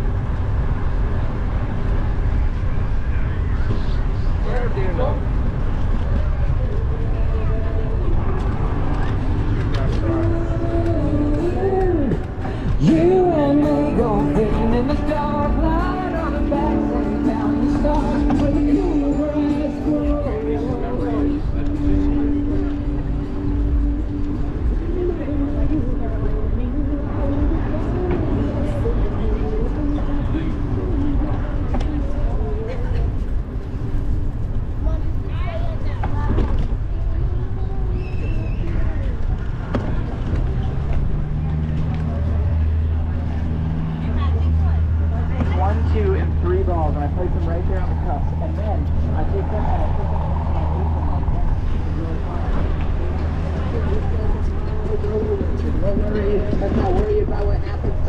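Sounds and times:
wind rumble on microphone: 0:00.0 - 0:15.2, 0:47.0 - 0:58.0
low motor hum: 0:00.0 - 0:38.0
pedestrians chatting: 0:00.0 - 0:58.0.

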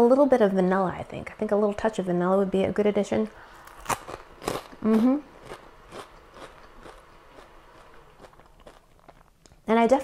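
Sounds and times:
person chewing crunchy toast: 0:03.6 - 0:09.6.

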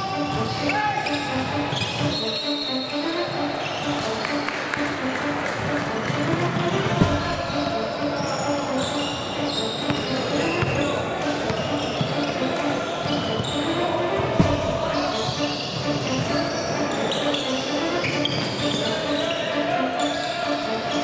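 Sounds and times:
players calling out: 0:00.0 - 0:21.0
shoes squeaking on hardwood floor: 0:00.2 - 0:04.5, 0:06.0 - 0:19.4
basketball bouncing: 0:07.0 - 0:07.6, 0:14.4 - 0:15.1
sharp thump: 0:14.4 - 0:14.9.

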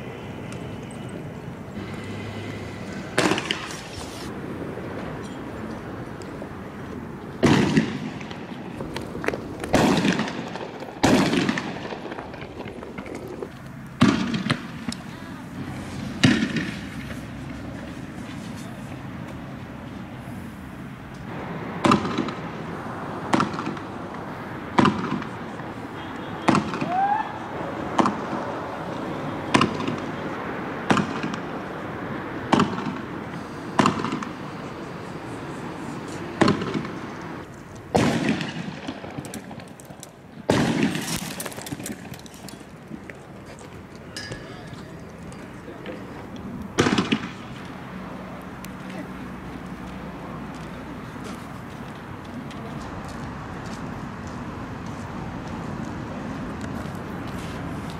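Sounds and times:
fireworks bangs: 0:01.8 - 0:04.7, 0:07.4 - 0:18.2, 0:21.3 - 0:31.8, 0:32.4 - 0:35.1, 0:36.3 - 0:37.2, 0:37.9 - 0:42.4, 0:44.3 - 0:47.7.

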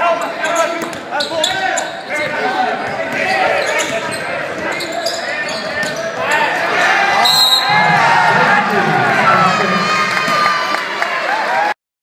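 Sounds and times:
crowd voices: 0:00.0 - 0:11.8
sneakers squeaking on hardwood: 0:00.4 - 0:06.5
referee's whistle: 0:07.2 - 0:07.8.

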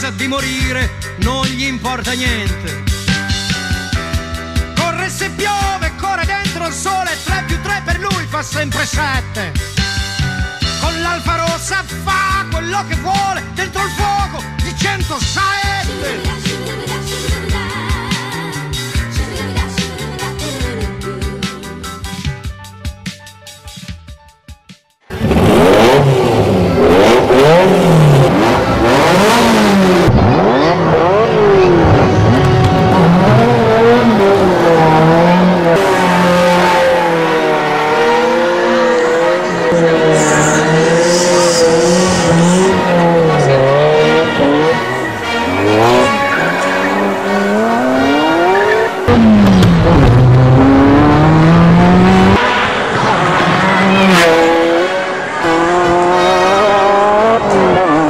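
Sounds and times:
car engines revving: 0:14.5 - 0:22.2, 0:25.1 - 0:58.0.

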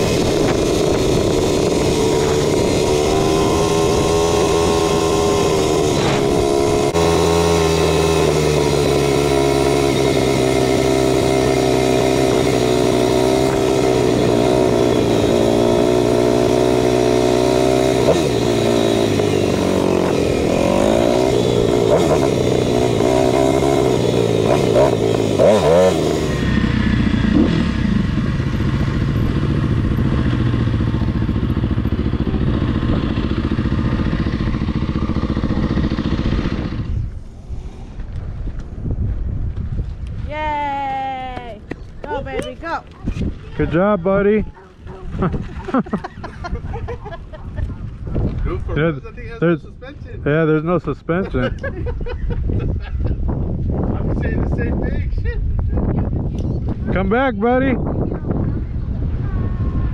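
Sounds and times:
dirt bike engine running: 0:00.0 - 0:40.0.

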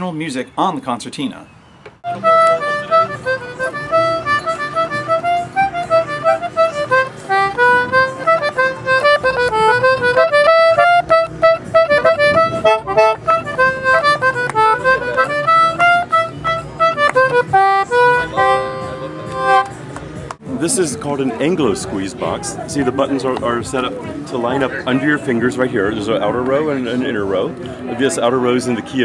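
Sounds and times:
concertina melody: 0:02.0 - 0:19.9.

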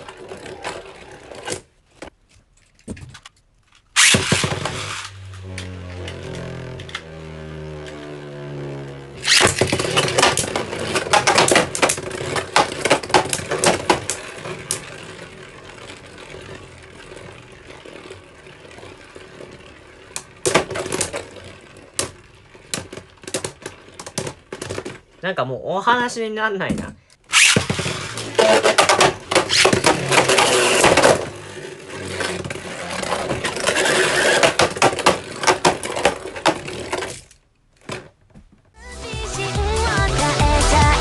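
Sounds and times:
ripcord launch zip: 0:03.9 - 0:19.2, 0:27.3 - 0:37.2
spinning tops humming: 0:04.0 - 0:24.1.

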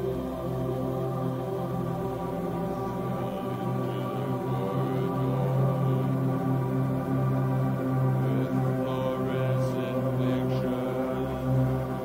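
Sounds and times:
low drone hum with overtones: 0:00.0 - 0:12.0.

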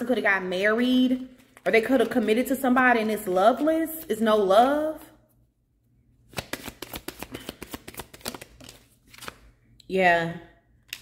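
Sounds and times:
cards being shuffled: 0:06.3 - 0:09.6.

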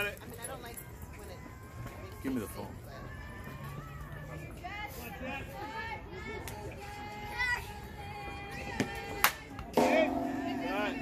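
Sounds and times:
voices chanting sing-song: 0:03.1 - 0:11.0.

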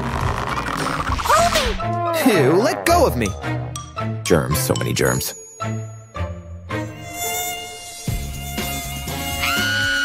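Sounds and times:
background music: 0:00.0 - 0:10.0
fly buzzing: 0:06.8 - 0:10.0.

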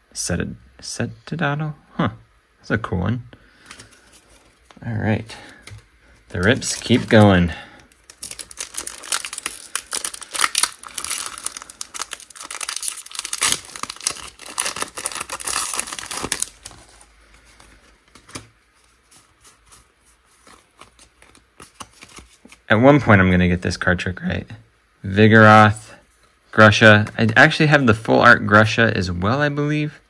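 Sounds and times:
foil wrapper tearing and crinkling: 0:06.3 - 0:17.1.

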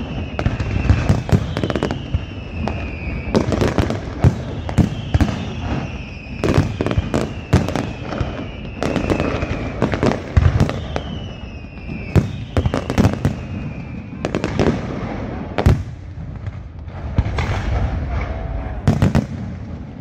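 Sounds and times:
falling firework whistles: 0:00.0 - 0:16.0
fireworks bangs and crackling: 0:00.0 - 0:20.0.

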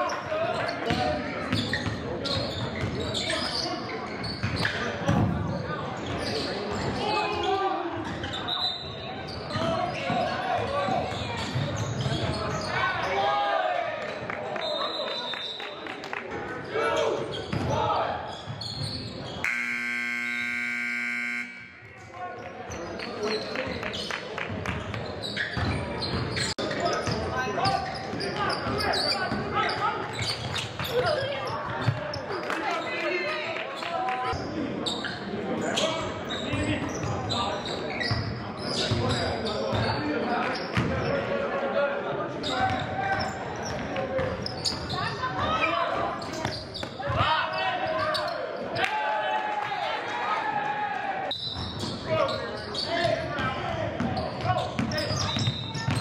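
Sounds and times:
scoreboard buzzer: 0:19.4 - 0:21.9.

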